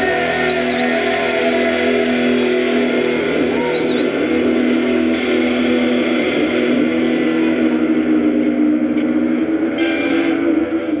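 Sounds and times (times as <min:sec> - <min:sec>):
electric guitar chord ringing: 0:00.0 - 0:11.0.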